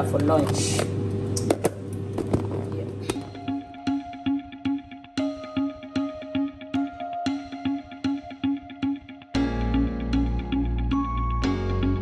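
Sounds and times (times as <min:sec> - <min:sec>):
light plucked background music: 0:03.1 - 0:12.0.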